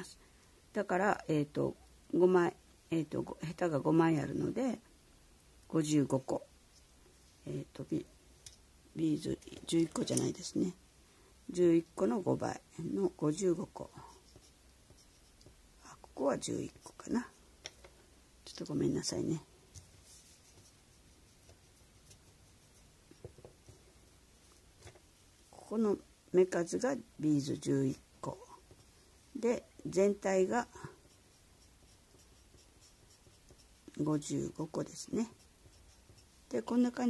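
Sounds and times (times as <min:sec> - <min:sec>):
pencil scratching on paper: 0:13.4 - 0:17.4, 0:20.0 - 0:23.4, 0:27.4 - 0:37.0.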